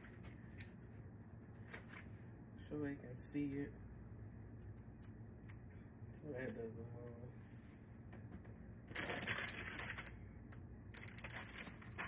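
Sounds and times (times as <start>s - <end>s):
paper gift bag crinkling: 8.9s - 10.2s, 10.9s - 12.0s.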